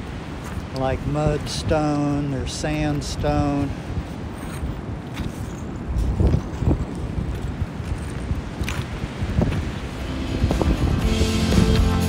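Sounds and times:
wind buffeting microphone: 0:00.0 - 0:11.9
guitar music: 0:10.0 - 0:12.0.

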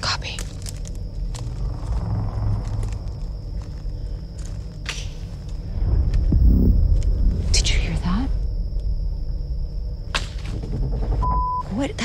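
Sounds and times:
twigs snapping: 0:00.0 - 0:07.2
steady low rumble: 0:00.0 - 0:12.0
low thud: 0:05.6 - 0:07.6.

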